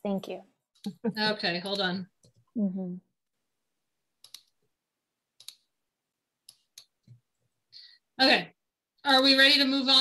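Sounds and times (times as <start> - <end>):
mouse and keyboard clicks: 4.2 - 4.6, 5.4 - 5.7.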